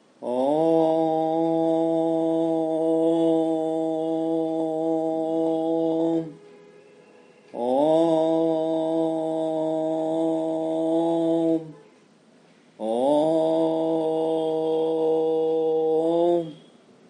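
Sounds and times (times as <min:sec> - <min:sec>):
voice chanting a held note: 0:00.2 - 0:12.1, 0:12.8 - 0:16.8.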